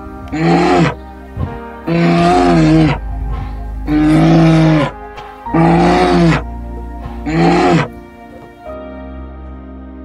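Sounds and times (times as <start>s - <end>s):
music with sustained tones: 0.0s - 10.0s
large animal calling: 0.3s - 1.0s, 1.8s - 6.6s, 7.2s - 8.0s.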